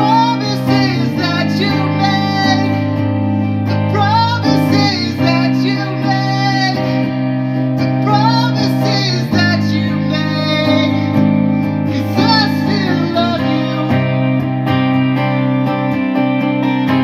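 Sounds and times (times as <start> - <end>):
strummed electric guitar: 0.0 - 17.0
man singing high notes: 11.9 - 14.2.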